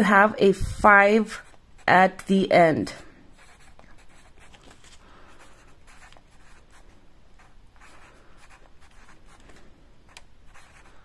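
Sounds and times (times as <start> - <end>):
pencil scratching on paper: 3.3 - 9.5, 10.1 - 11.0.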